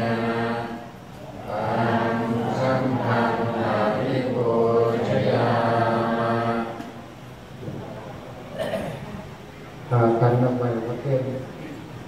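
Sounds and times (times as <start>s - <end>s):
low monotone chanting: 0.0s - 7.9s.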